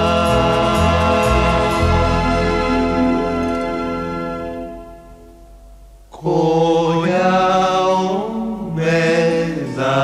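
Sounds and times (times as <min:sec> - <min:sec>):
male voices singing harmony chords: 0:00.0 - 0:03.0, 0:06.1 - 0:10.0.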